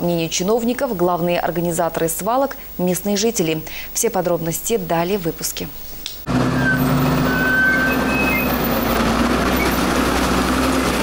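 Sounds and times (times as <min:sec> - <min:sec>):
diesel engine running under load: 0:06.3 - 0:11.0
high squeaks: 0:06.4 - 0:09.9.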